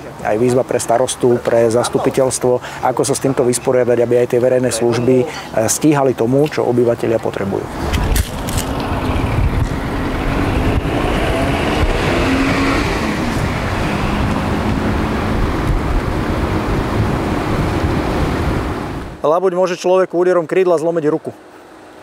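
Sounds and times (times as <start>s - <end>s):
cars passing on street: 7.5s - 19.2s.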